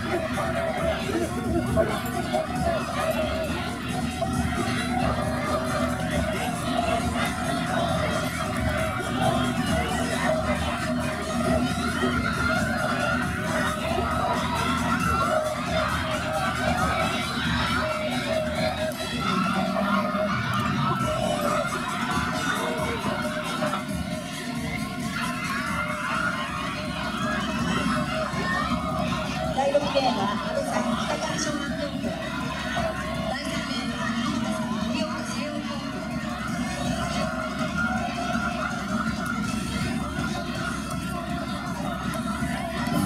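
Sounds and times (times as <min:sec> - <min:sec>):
crowd cheering: 0:00.0 - 0:43.0
music: 0:00.0 - 0:43.0.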